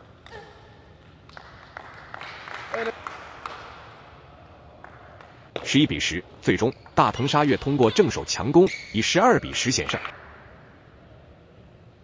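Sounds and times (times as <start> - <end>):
shoe squeaks: 6.8 - 9.3.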